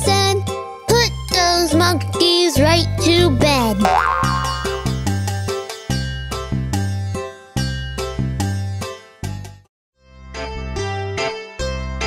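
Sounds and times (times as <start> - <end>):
bouncy children's song music: 0.0 - 5.6
rising boing sound effect: 3.8 - 5.1.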